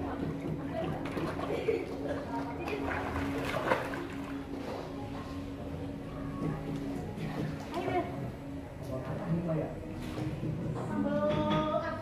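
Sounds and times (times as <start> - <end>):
water sloshing around swimmer: 0.0 - 5.0
water splash: 2.7 - 4.4.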